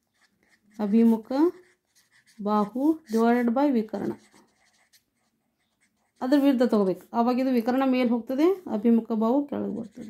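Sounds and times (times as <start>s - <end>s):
marker pen scratching on paper: 0.0s - 10.0s.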